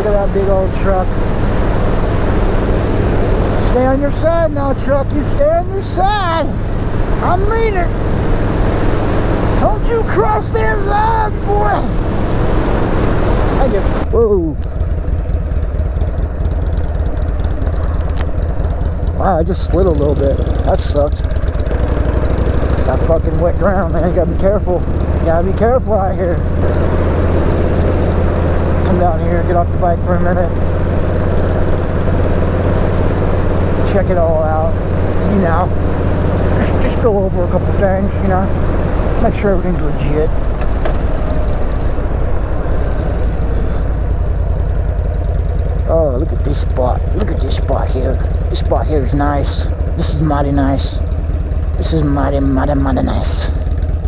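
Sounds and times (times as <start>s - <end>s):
motorcycle engine at low revs: 0.0s - 54.0s.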